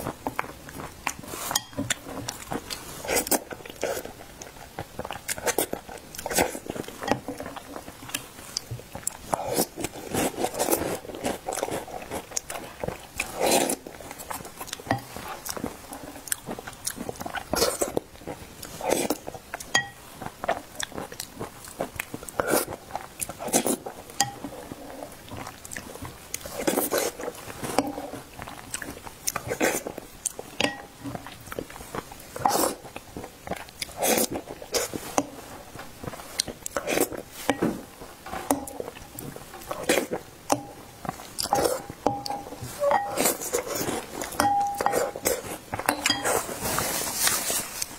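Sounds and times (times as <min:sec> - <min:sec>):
wet chewing mouth sounds: 0:00.0 - 0:47.9
spoon scraping glass bowl: 0:01.5 - 0:01.9, 0:24.2 - 0:24.7, 0:41.5 - 0:47.6
glass ringing squeaks: 0:42.1 - 0:43.2.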